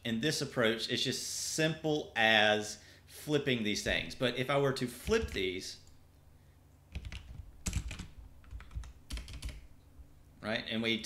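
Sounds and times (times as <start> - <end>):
computer keyboard typing: 6.9 - 9.7.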